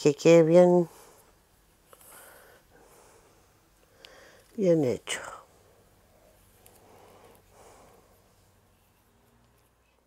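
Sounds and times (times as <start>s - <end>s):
woman's voice: 0.0s - 1.0s, 4.6s - 5.5s
faint soft noises: 0.4s - 10.0s.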